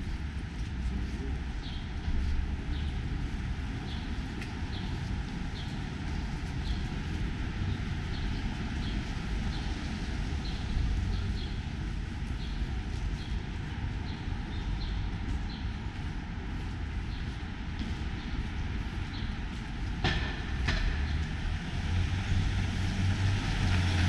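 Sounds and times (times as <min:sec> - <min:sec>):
low traffic rumble: 0:00.0 - 0:24.0.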